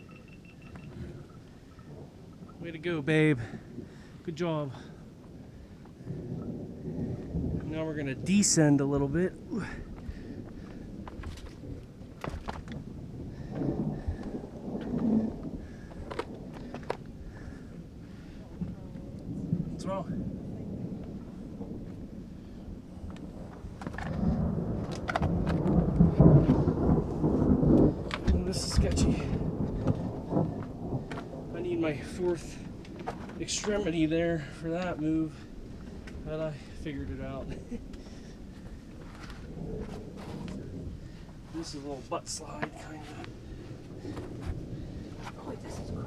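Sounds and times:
thunder rumbling: 0:00.0 - 0:46.0.

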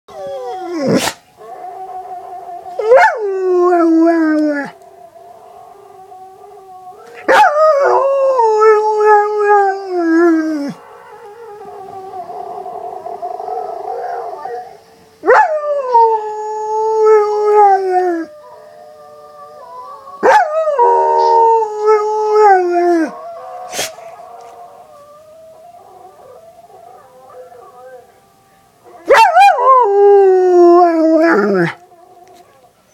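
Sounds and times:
dog howling: 0:00.1 - 0:32.7.

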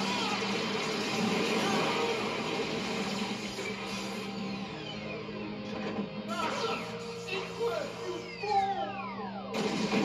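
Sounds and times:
energy blast and explosion effects: 0:09.5 - 0:10.0.

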